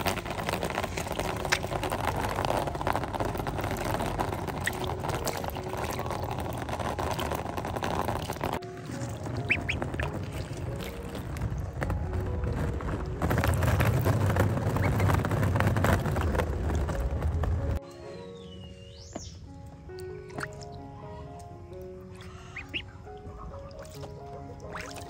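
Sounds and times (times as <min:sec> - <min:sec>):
water rushing from a hose: 0:00.0 - 0:17.7, 0:22.2 - 0:25.0
background music: 0:00.0 - 0:25.0
ducklings peeping: 0:00.1 - 0:11.5, 0:14.3 - 0:16.3, 0:20.2 - 0:25.0.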